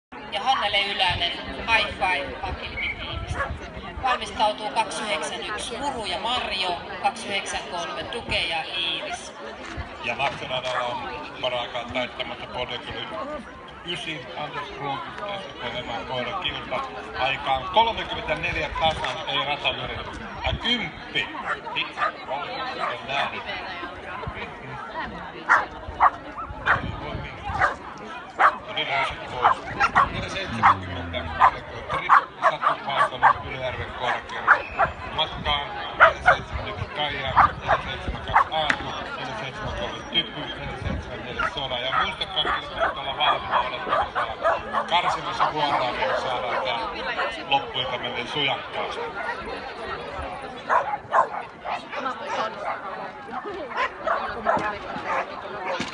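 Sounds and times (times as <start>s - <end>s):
background chatter: 0.1s - 55.9s
dog barking: 25.5s - 26.8s, 27.6s - 27.8s, 28.4s - 28.6s, 29.4s - 33.4s, 34.5s - 34.9s, 41.4s - 44.9s, 50.7s - 51.8s
background voices: 29.5s - 32.2s.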